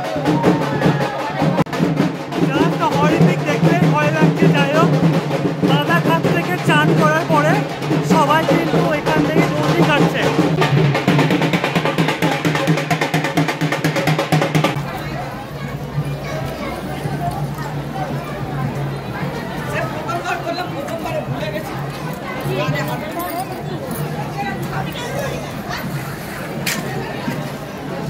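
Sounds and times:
fast continuous drumming: 0.0s - 16.1s
crowd voices and shouts: 0.0s - 28.0s.

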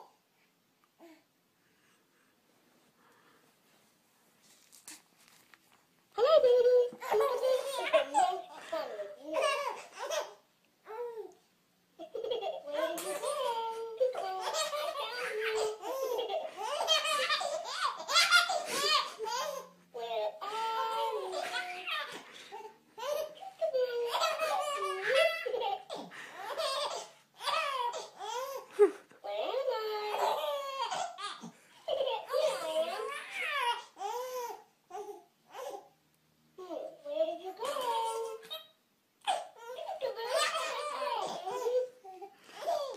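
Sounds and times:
baby laughing: 6.2s - 10.4s, 12.0s - 34.6s, 37.6s - 42.9s.

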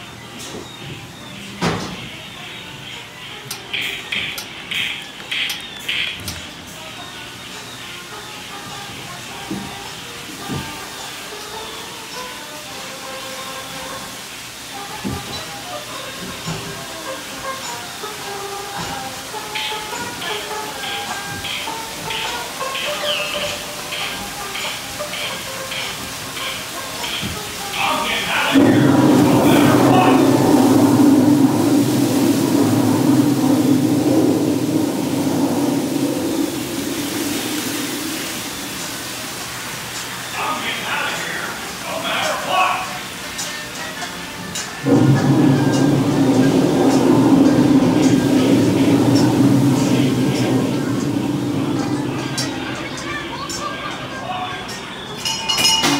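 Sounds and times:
ride soundtrack music: 0.0s - 13.0s, 14.9s - 33.6s
rush of gushing water: 1.0s - 55.9s.

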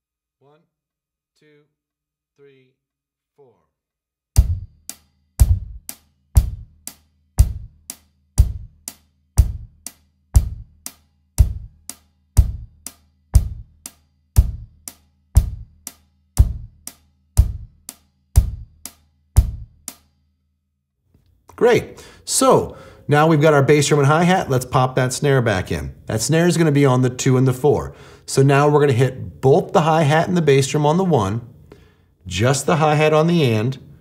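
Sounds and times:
bass drum beats: 4.4s - 19.9s.

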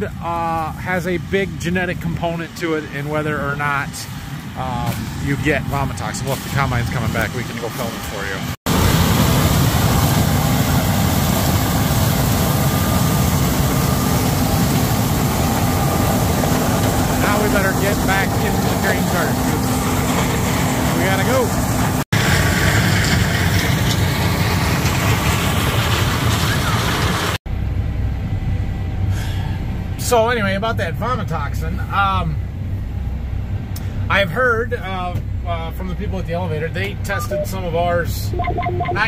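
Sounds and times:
combine harvester engine drone: 0.0s - 39.0s.

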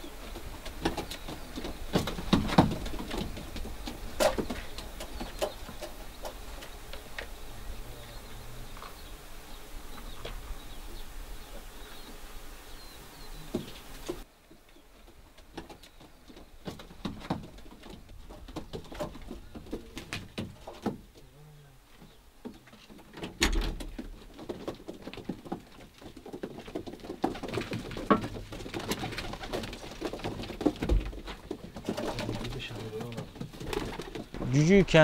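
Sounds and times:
pigeons cooing: 0.0s - 14.2s, 15.8s - 23.3s, 23.9s - 35.0s.

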